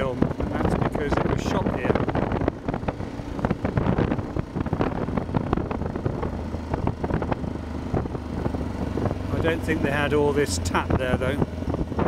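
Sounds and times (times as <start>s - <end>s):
motorcycle engine running: 0.0s - 12.0s
wind rumbling on microphone: 0.0s - 12.0s.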